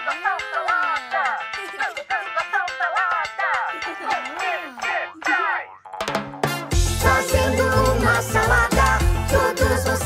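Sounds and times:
upbeat children's song: 0:00.0 - 0:10.0
cartoon voices with sliding pitch: 0:04.2 - 0:06.1
boing sound effects: 0:04.2 - 0:06.8.

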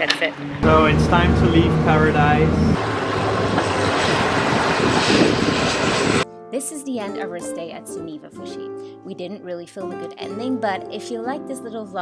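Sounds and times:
turboprop plane engines humming: 0:00.3 - 0:06.2.

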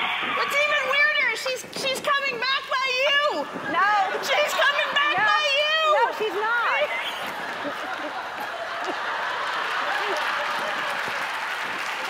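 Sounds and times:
audience applauding: 0:06.1 - 0:12.0.

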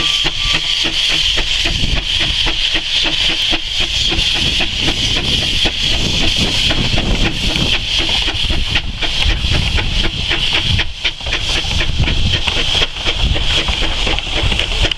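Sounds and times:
steam hissing: 0:00.0 - 0:14.9
train rumbling: 0:00.0 - 0:14.9.

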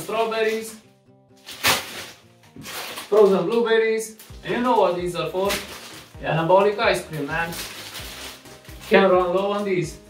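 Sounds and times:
plastic bags rustling: 0:00.0 - 0:00.8, 0:01.4 - 0:10.0
soft background music: 0:00.0 - 0:10.0.

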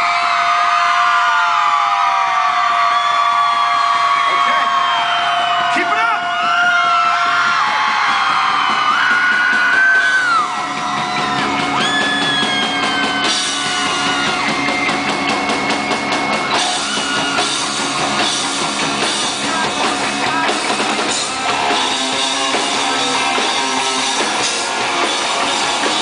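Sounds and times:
audience screaming: 0:00.0 - 0:26.0
live rock band: 0:02.6 - 0:26.0.

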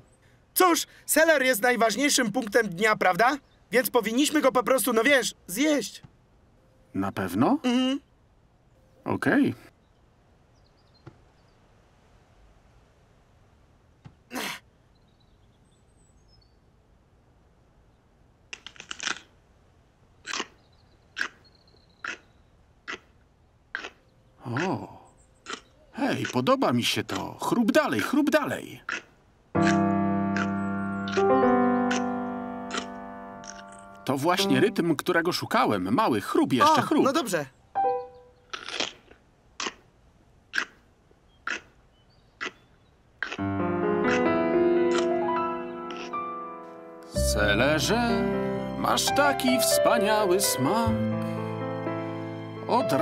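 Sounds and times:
crunching bites of celery: 0:18.6 - 0:19.3, 0:22.0 - 0:22.3, 0:23.7 - 0:24.7, 0:25.4 - 0:26.4, 0:38.5 - 0:39.9, 0:40.5 - 0:40.8, 0:41.4 - 0:41.8, 0:43.2 - 0:43.5, 0:44.9 - 0:45.1
celery crunching: 0:25.4 - 0:26.4, 0:28.9 - 0:31.3, 0:31.9 - 0:34.0, 0:38.5 - 0:39.8, 0:43.2 - 0:43.5, 0:44.9 - 0:45.2.

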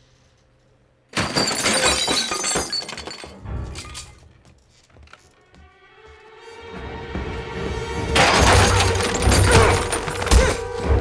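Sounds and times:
window glass shattering: 0:01.1 - 0:04.2, 0:08.2 - 0:10.7.

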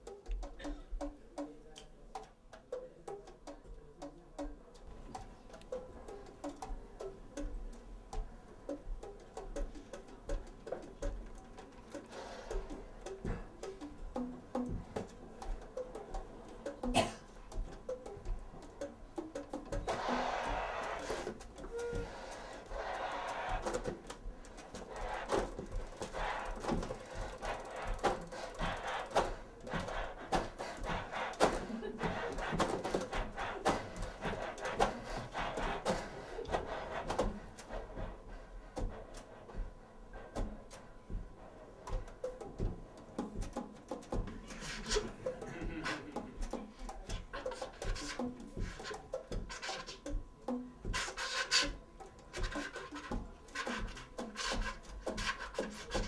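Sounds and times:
saxophone key clicks and taps: 0:00.0 - 0:20.1
breathy rushing hiss: 0:11.9 - 0:13.9, 0:19.9 - 0:41.8.

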